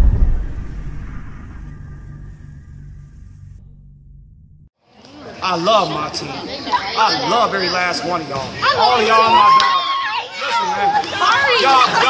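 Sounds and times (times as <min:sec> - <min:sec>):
low drone with high tones: 0:00.0 - 0:04.7.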